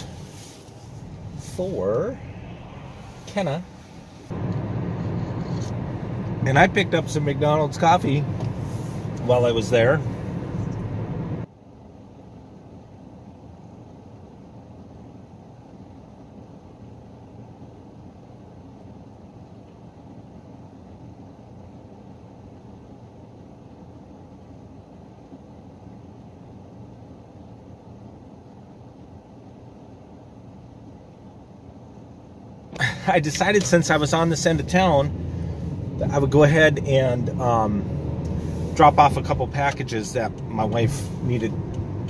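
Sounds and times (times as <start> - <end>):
car engine idling: 0.0 - 11.5, 32.8 - 42.0.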